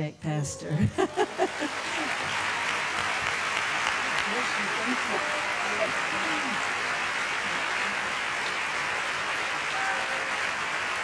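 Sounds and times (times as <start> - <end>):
woman laughing: 0.6 - 2.2
congregation applauding: 0.9 - 11.0.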